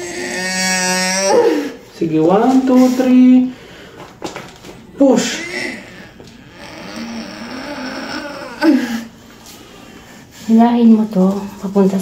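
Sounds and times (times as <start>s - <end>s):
woman moaning: 0.0s - 1.9s, 5.0s - 9.2s.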